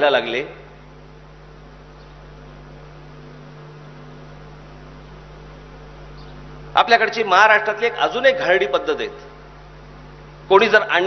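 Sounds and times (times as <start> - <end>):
electrical mains hum: 0.0 - 11.0
light hiss: 0.6 - 7.5, 8.5 - 11.0.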